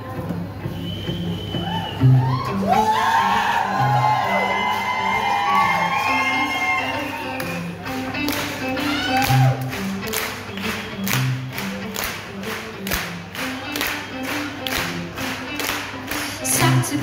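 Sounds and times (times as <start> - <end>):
bass guitar: 0.0 - 17.0
drums: 0.0 - 17.0
electric guitar: 0.0 - 17.0.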